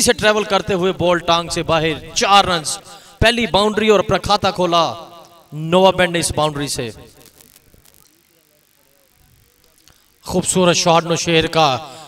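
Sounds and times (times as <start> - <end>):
faint distant voices: 7.7 - 10.3.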